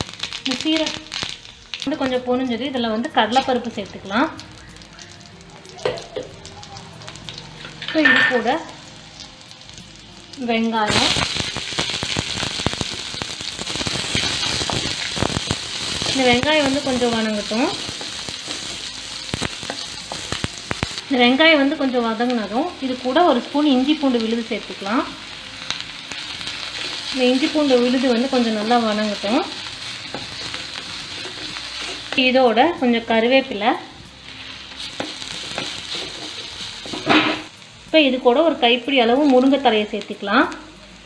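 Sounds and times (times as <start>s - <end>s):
grains sizzling in hot oil: 0.0s - 41.0s.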